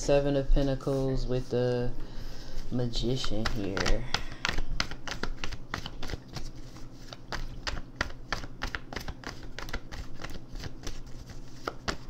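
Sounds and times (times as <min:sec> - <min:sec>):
cards being shuffled: 0:02.5 - 0:12.0.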